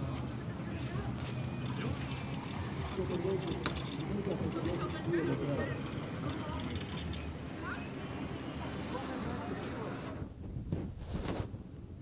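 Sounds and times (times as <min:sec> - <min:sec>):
boat engine rumbling: 0:00.0 - 0:10.2
people talking: 0:00.0 - 0:10.3.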